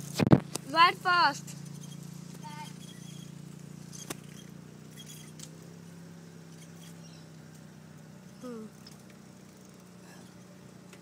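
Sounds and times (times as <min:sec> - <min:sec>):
car engine low hum: 0:00.0 - 0:11.0.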